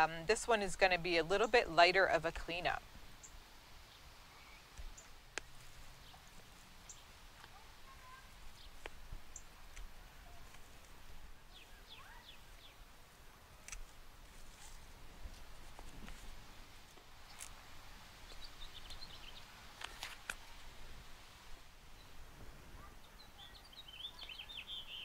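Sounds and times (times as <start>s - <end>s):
faint bird chirps: 3.2s - 5.2s, 6.8s - 8.7s, 11.3s - 12.8s, 21.9s - 25.0s
pruners snipping stems: 13.6s - 14.8s.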